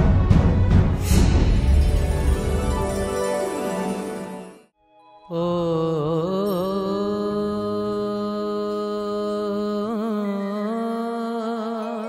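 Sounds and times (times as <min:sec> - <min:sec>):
intro theme music: 0:00.0 - 0:05.3.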